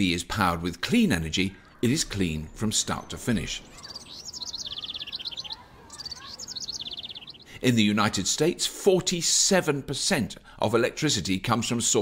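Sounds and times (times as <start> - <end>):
small bird trilling: 2.5 - 7.5.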